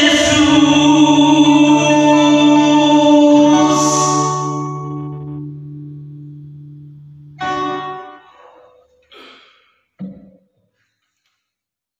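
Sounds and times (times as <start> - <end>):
strummed guitar chord: 0.0 - 8.4
guitar chord ringing out: 0.0 - 8.6.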